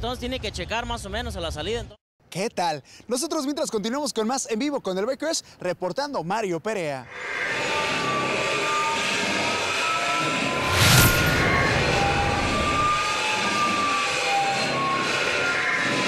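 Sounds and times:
loud impact hit: 10.5 - 13.2
faint gliding tones: 10.5 - 13.3
jet-like rushing noise: 10.5 - 13.3.

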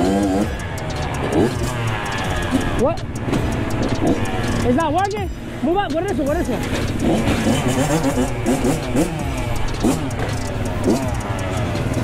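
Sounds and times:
dirt bike engine revving: 0.0 - 12.0
dirt bikes idling: 0.0 - 12.0.

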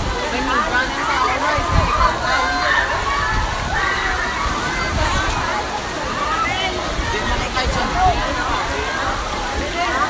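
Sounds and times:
crowd chattering and shouting: 0.0 - 10.0
water splashing into pool: 0.0 - 10.0.

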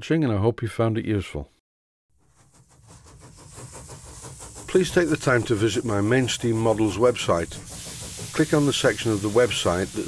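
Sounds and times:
mechanical hiss with rapid clatter: 2.2 - 10.0.

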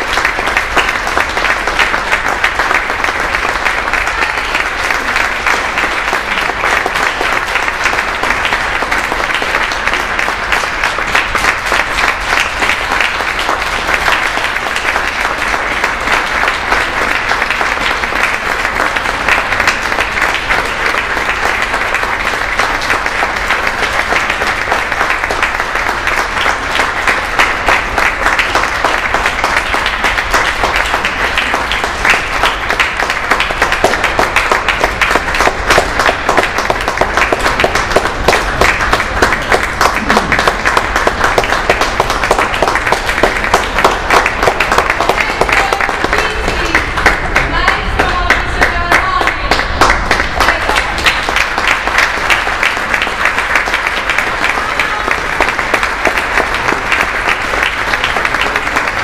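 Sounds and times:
audience applause: 0.0 - 59.0.

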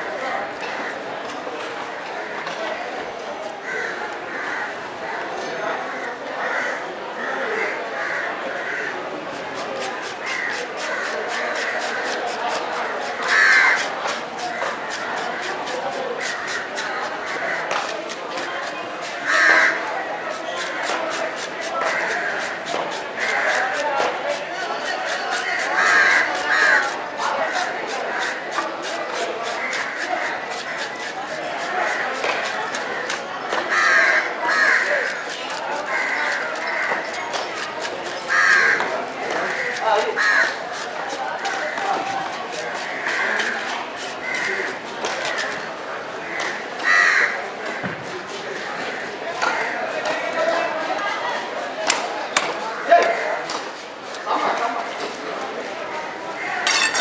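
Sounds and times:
crow cawing: 3.6 - 4.7, 5.9 - 9.0, 10.1 - 12.2, 13.2 - 13.9, 16.2 - 17.7, 19.2 - 19.9, 25.3 - 28.6, 33.7 - 35.2, 35.8 - 37.6, 38.3 - 40.8, 42.6 - 43.6, 44.2 - 44.7, 46.3 - 47.4.

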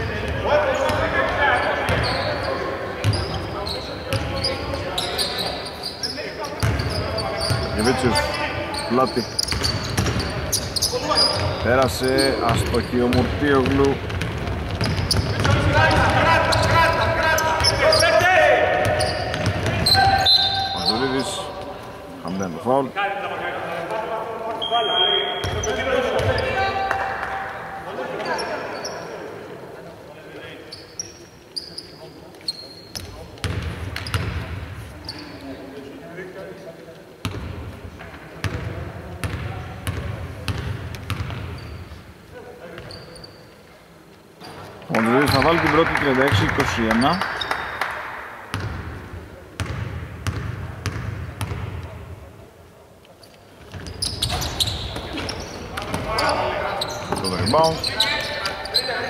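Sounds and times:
players' voices in arena: 0.0 - 59.0
basketball bouncing on wooden court: 6.6 - 7.8, 9.4 - 11.6, 12.4 - 18.0, 18.7 - 20.1, 32.9 - 34.5, 38.4 - 41.7, 48.5 - 48.9, 49.6 - 51.9.

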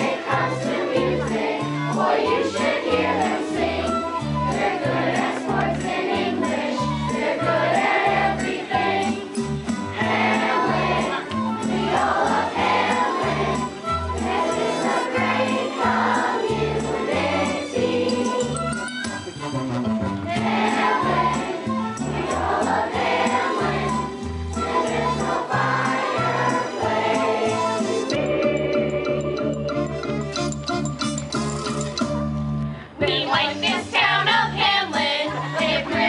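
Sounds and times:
chorus of young voices singing: 0.0 - 18.6, 20.3 - 28.4, 33.0 - 36.0
instrumental accompaniment with beat: 0.0 - 34.4.

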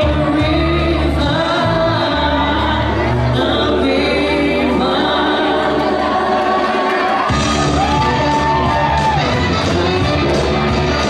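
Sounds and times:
backing track: 0.0 - 11.0.

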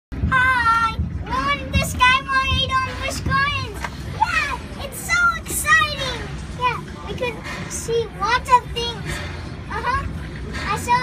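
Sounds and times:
low steady rumble: 0.1 - 11.0.

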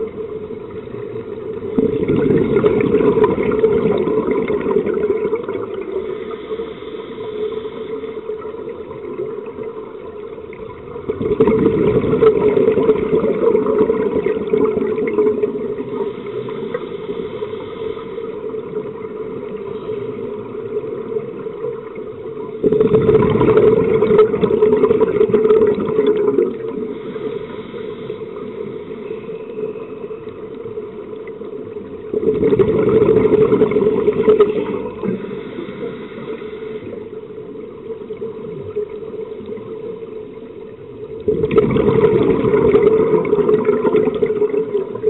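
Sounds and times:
scuba regulator exhaling bubbles: 0.0 - 6.5, 10.5 - 17.5, 22.5 - 28.7, 31.9 - 37.0, 41.0 - 45.0
steady hum: 0.0 - 45.0.

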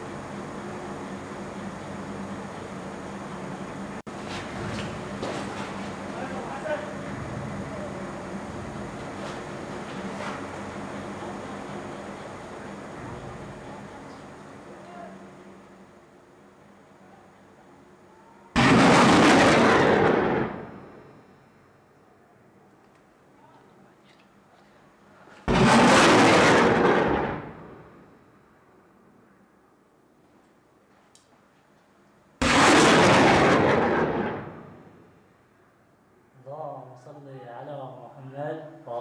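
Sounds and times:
loud blast with rushing roar: 18.6 - 21.2, 25.5 - 28.0, 32.4 - 35.1.

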